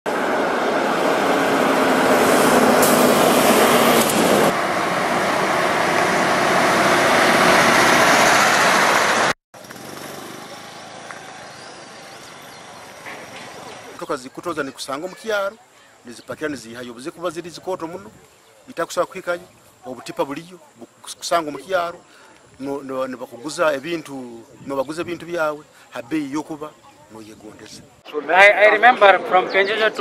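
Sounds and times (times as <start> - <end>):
lorries driving past: 0.1 - 22.6
quiet outdoor background: 9.6 - 30.0.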